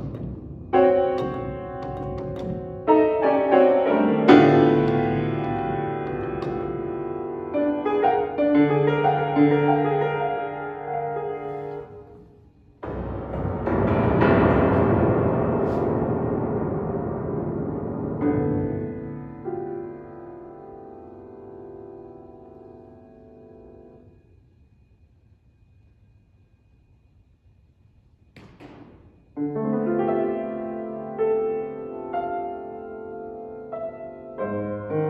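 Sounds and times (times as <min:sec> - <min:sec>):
piano bass chords: 0:00.0 - 0:12.1, 0:12.8 - 0:24.0.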